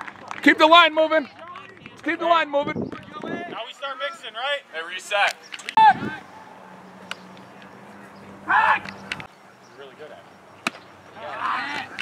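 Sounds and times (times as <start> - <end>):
people shouting: 5.8 - 6.7, 8.3 - 9.0, 11.2 - 12.0.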